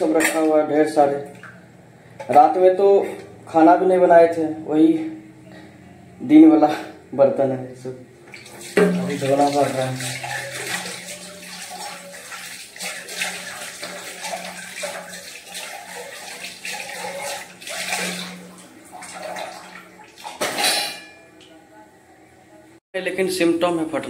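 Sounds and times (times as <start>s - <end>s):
water running from tap: 8.3s - 20.4s
steel utensils clattering: 8.8s - 18.6s, 20.3s - 21.2s.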